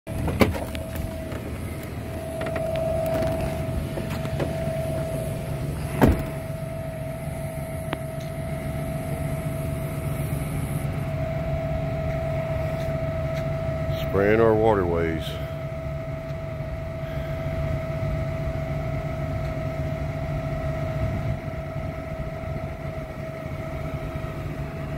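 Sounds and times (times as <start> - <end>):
vehicle engine idling: 0.0 - 24.9
higher-pitched hum: 0.1 - 24.9.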